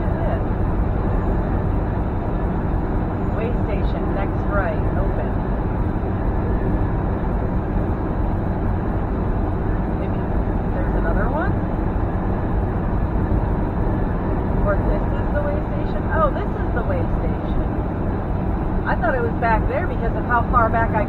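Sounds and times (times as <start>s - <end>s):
truck road and engine noise: 0.0s - 21.0s.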